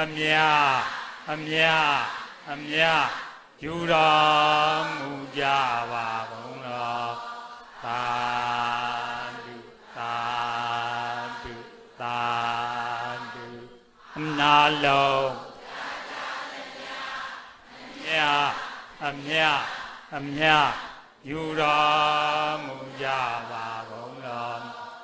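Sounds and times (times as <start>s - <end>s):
man chanting: 0.0s - 7.2s, 7.8s - 15.4s, 18.0s - 24.9s.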